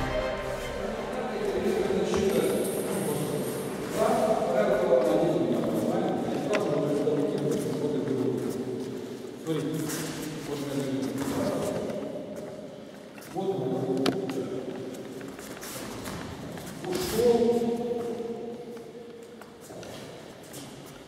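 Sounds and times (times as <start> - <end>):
man talking in echoing hall: 0.0 - 21.0.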